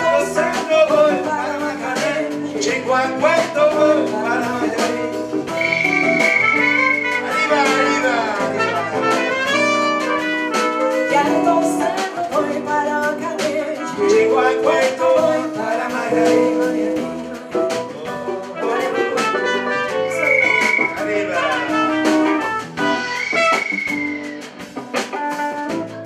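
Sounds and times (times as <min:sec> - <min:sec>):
electric bass: 0:00.0 - 0:26.0
keyboard: 0:00.0 - 0:26.0
trumpet: 0:00.0 - 0:26.0
blues harmonica: 0:04.2 - 0:11.6, 0:18.1 - 0:25.9
woman singing: 0:11.1 - 0:19.4.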